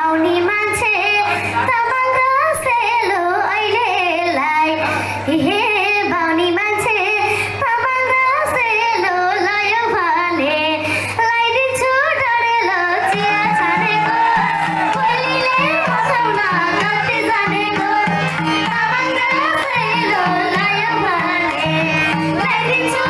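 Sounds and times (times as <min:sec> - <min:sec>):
girl singing into a microphone: 0:00.0 - 0:23.0.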